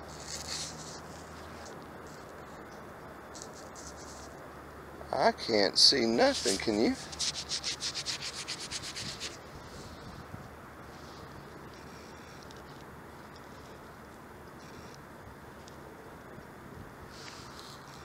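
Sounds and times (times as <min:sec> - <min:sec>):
faint outdoor background: 0:00.0 - 0:18.0
gloved fingers rubbing coin: 0:00.1 - 0:02.3, 0:03.4 - 0:04.4, 0:06.0 - 0:09.4.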